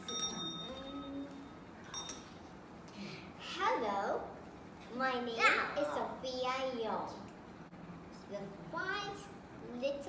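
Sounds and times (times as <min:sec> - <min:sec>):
small hand bell ringing: 0:00.0 - 0:01.3, 0:01.9 - 0:02.3.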